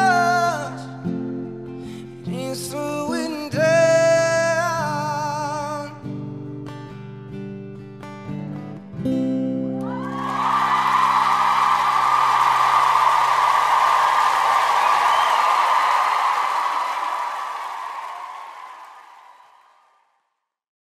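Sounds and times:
audience applause: 9.8 - 19.8.

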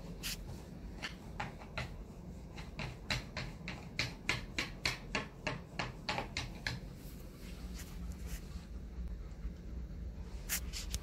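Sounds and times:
dog panting: 6.6 - 10.4.

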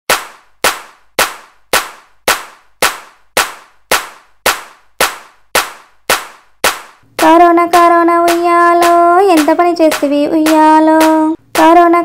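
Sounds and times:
hand claps with reverb: 0.1 - 12.0.

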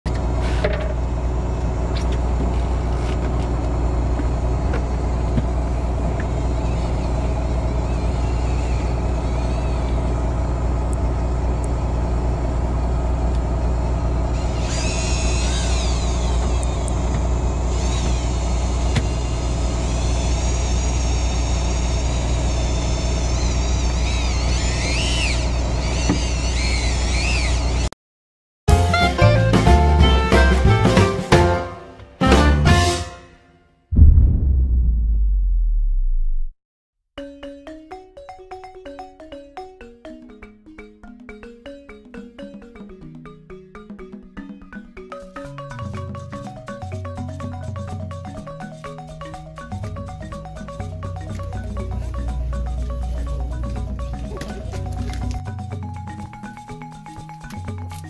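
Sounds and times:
boat engine humming: 0.1 - 27.9, 44.7 - 58.0.

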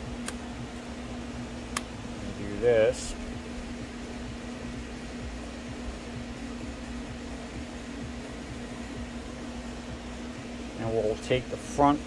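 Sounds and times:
fan humming: 0.0 - 12.0.

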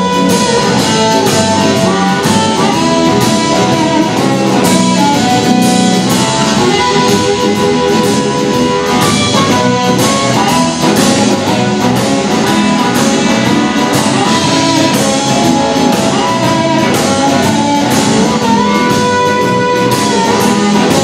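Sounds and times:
amplified harmonica: 0.0 - 21.0
bass guitar: 0.0 - 21.0
drum kit steady beat: 0.0 - 21.0
electric guitars: 0.0 - 21.0.

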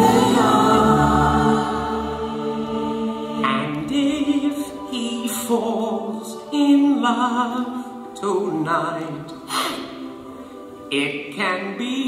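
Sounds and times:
a cappella voices holding chord: 0.0 - 12.0.

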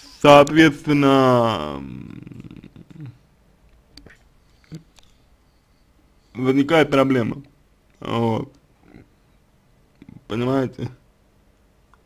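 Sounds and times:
man's creaky hesitation sound: 1.8 - 3.3.

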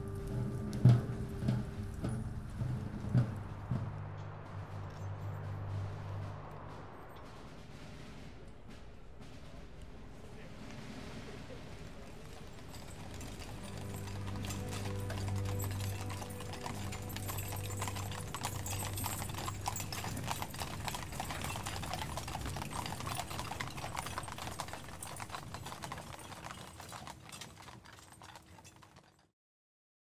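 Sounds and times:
horse hooves on pavement: 0.0 - 7.4, 8.5 - 29.3
low held tones: 0.0 - 8.8.

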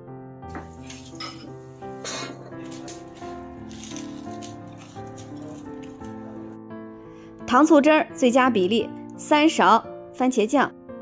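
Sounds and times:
background music: 0.0 - 11.0
oil sizzling: 0.5 - 6.6.

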